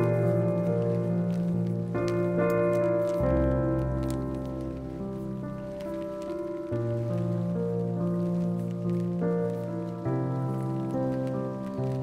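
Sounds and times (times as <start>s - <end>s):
light crackling: 0.0s - 12.0s.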